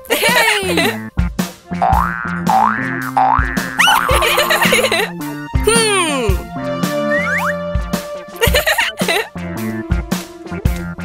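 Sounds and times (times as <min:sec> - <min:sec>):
bouncy cartoon music: 0:00.0 - 0:11.0
springy boing sound effect: 0:01.8 - 0:04.2.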